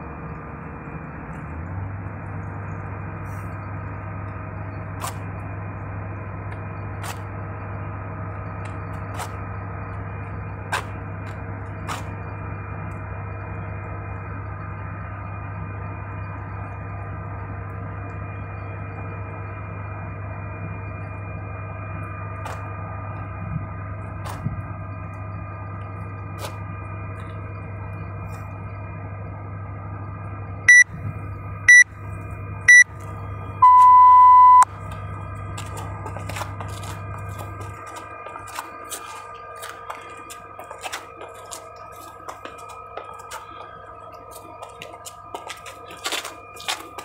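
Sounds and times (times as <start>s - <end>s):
faint constant tones: 0.0s - 47.0s
steady hum: 0.0s - 47.0s.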